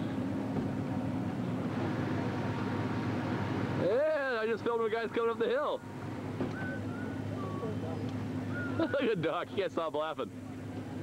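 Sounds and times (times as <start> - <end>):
engine running with low hum: 0.0 - 11.0.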